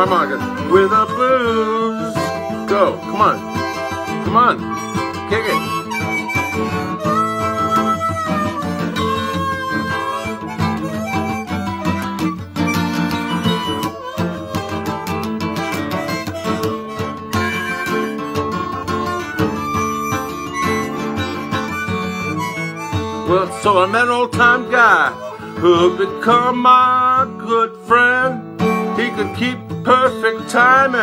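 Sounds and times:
blues harmonica solo: 0:00.0 - 0:31.0
strummed acoustic guitar: 0:00.0 - 0:31.0.

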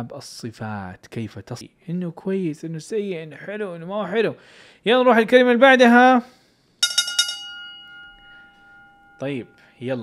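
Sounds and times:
bright bell-like chime: 0:06.8 - 0:10.0.

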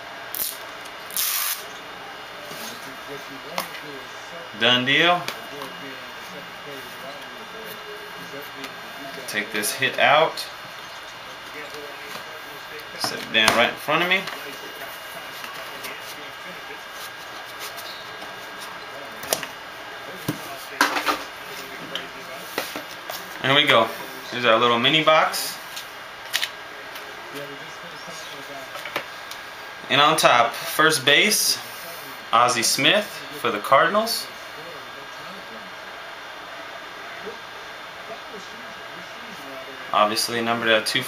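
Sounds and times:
packaging scraping hiss: 0:00.3 - 0:01.7.

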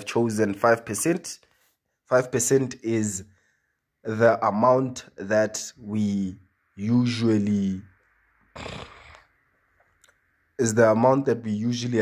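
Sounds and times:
noisy intake of breath: 0:08.5 - 0:09.4.

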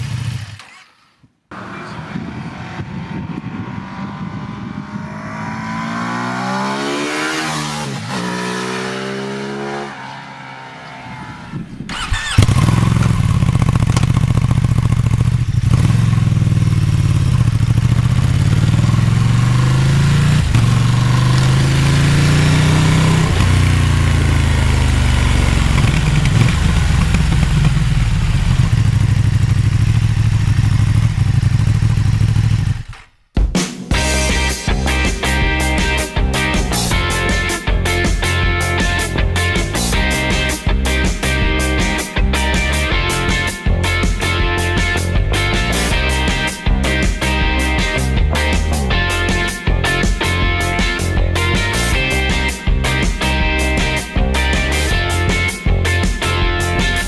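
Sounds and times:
motorcycle accelerating through gears: 0:00.0 - 0:33.0
motorcycle passing by: 0:01.5 - 0:32.9.

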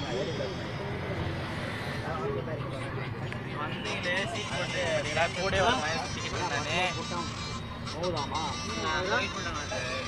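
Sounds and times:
bus rumbling: 0:00.0 - 0:10.0
young men calling and chattering: 0:00.0 - 0:10.0.

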